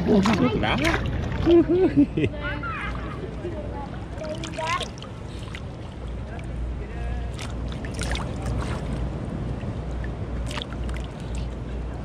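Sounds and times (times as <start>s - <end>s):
steady low rumble: 3.1s - 12.0s
shallow water splashing: 3.9s - 11.6s.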